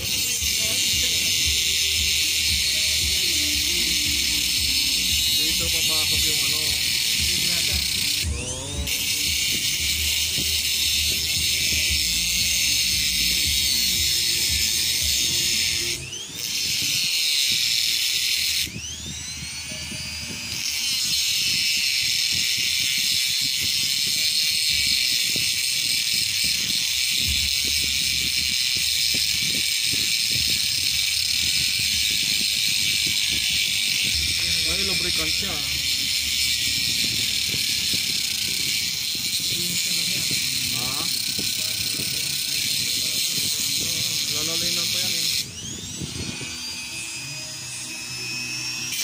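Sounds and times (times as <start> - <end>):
die grinder whining: 0.0 - 49.0.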